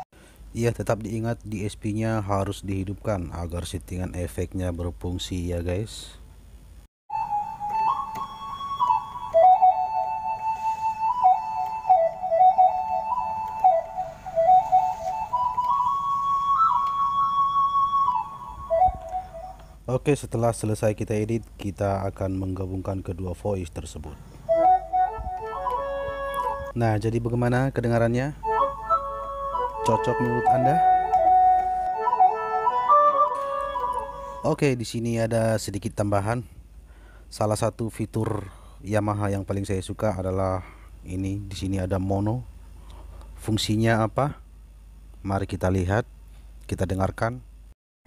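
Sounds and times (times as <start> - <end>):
keyboard flute lead melody: 7.1 - 19.8, 24.5 - 26.8, 28.0 - 34.6.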